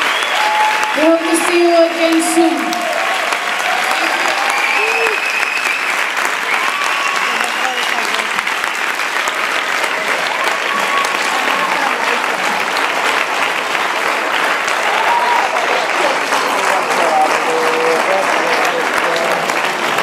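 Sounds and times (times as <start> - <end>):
audience cheering: 0.0 - 20.0
audience clapping: 0.0 - 20.0.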